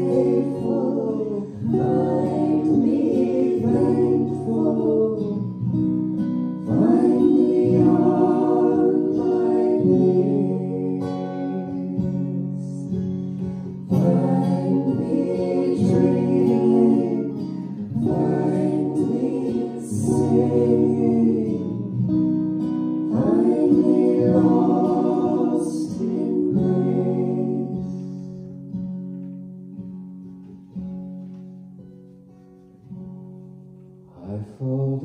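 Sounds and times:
voices singing: 0.0s - 5.7s, 6.6s - 13.1s, 13.8s - 22.2s, 23.0s - 28.4s
acoustic guitar: 0.0s - 35.0s.

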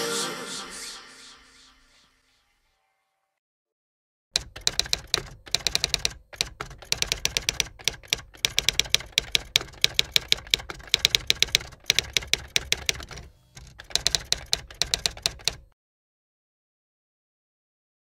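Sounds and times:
typewriter keys striking: 4.4s - 15.7s.

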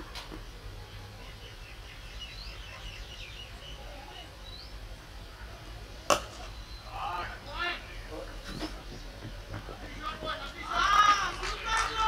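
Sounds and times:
birds chirping: 0.4s - 12.0s.

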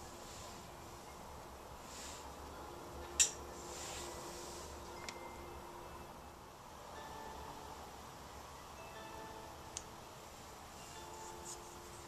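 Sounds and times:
faint steady hum: 0.0s - 12.0s
soft clay rubbing: 11.0s - 12.0s.

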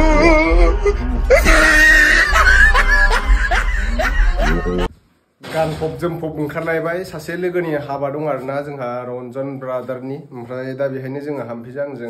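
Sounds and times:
background music with bass: 0.0s - 4.9s
person snickering: 0.8s - 4.9s.

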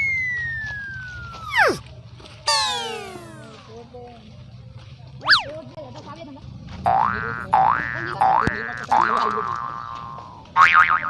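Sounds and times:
descending comedy whistle: 0.0s - 1.8s, 2.5s - 3.5s.

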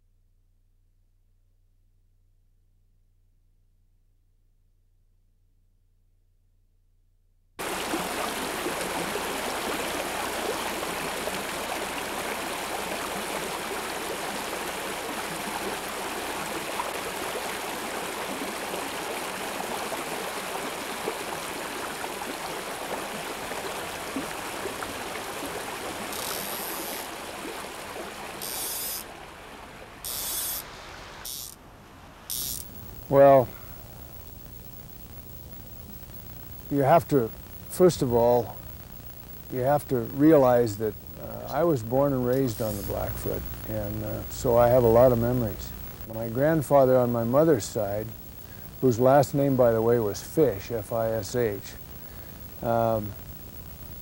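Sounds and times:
short high hissing bursts: 26.1s - 27.1s, 28.4s - 29.0s, 30.0s - 31.6s, 32.3s - 34.7s.

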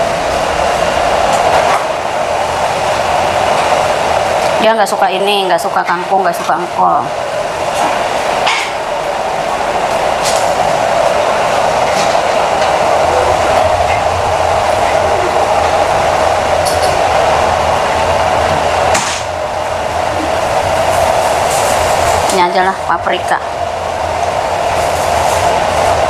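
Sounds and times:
low hum: 0.0s - 26.0s
whooshing machine noise: 0.0s - 26.0s.

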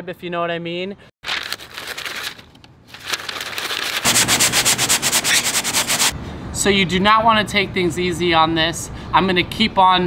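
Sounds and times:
leather scrubbing on concrete: 4.0s - 6.1s.

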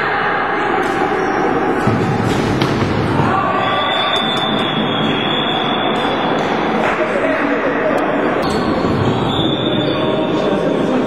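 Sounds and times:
voices in sports hall: 0.0s - 11.0s
sticks hitting ball: 1.8s - 3.4s.

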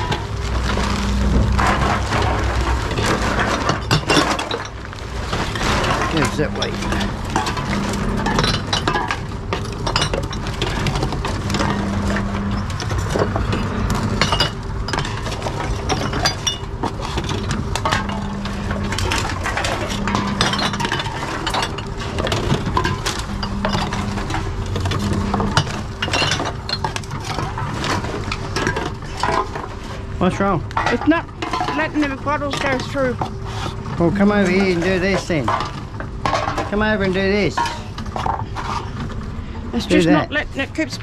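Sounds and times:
cans and bottles clinking: 0.0s - 30.1s, 30.7s - 39.2s
low machine hum: 0.0s - 41.0s.

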